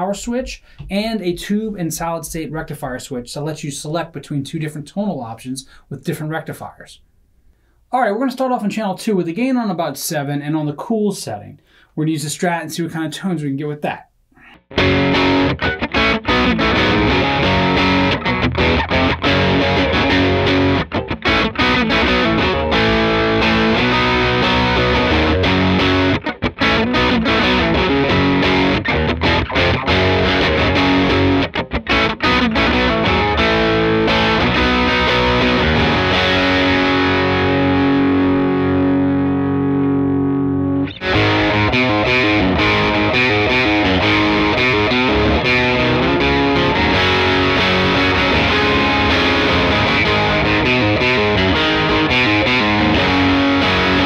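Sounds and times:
overdriven electric guitar: 14.4s - 54.0s.

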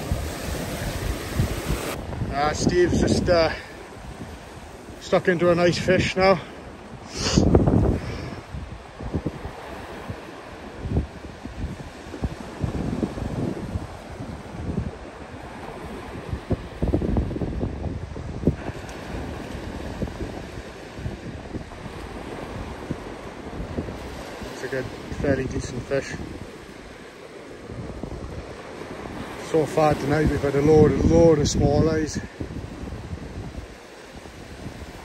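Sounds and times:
surf breaking on beach: 0.0s - 35.0s
wind gusting against microphone: 0.0s - 35.0s.

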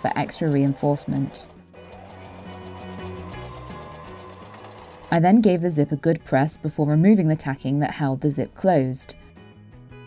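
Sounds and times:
sewing machine running: 0.0s - 5.6s
background music: 0.0s - 10.0s.

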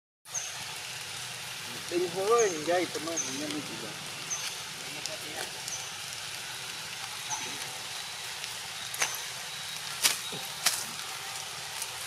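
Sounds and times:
outdoor background hiss: 0.3s - 12.0s
high thin chirp: 4.3s - 4.6s.

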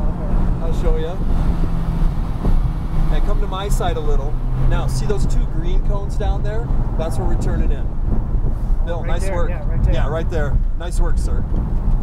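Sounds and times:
car engine drone from cabin: 0.0s - 10.8s
road and wind noise: 0.0s - 12.0s.

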